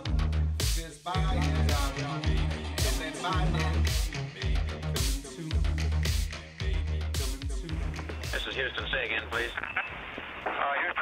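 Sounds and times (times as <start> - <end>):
background music: 0.0 - 11.0
voice over radio: 8.3 - 9.7, 10.4 - 11.0.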